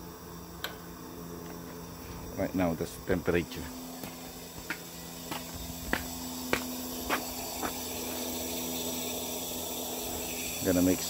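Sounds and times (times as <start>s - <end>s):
gas flame hissing: 0.0s - 11.0s.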